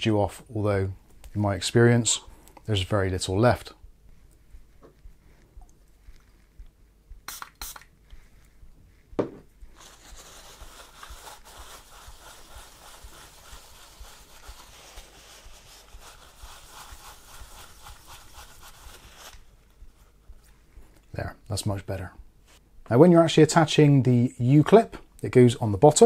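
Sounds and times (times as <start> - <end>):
cloth rubbing on metal plate: 8.3 - 20.4
sharp knock: 9.2 - 9.5.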